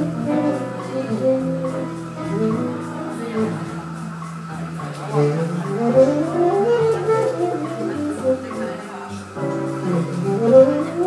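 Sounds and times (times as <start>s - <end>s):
slow melody of sliding notes: 0.0s - 11.0s.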